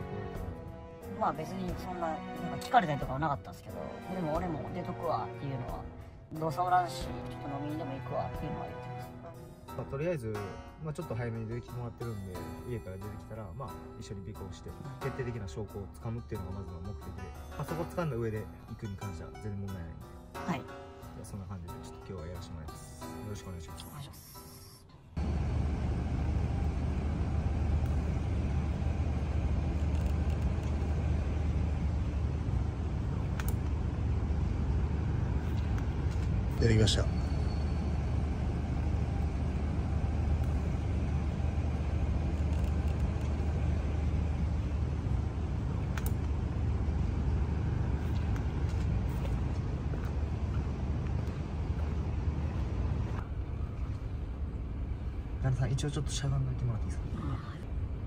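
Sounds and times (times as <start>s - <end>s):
low rumble of street ambience: 25.0s - 58.0s.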